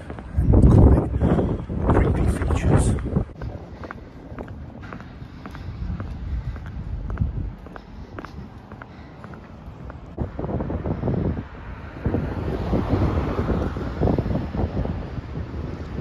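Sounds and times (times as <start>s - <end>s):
light footsteps walking: 0.0s - 10.2s
street background: 0.0s - 16.0s
wind buffeting microphone: 0.0s - 16.0s.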